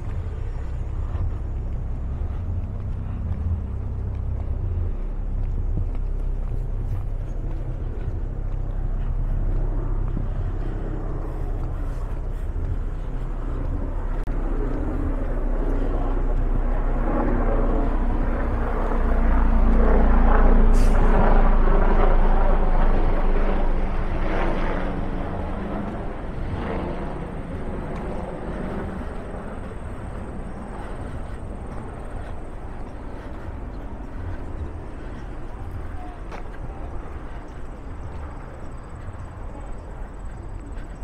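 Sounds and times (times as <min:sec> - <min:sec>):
city street traffic: 0:00.0 - 0:41.0.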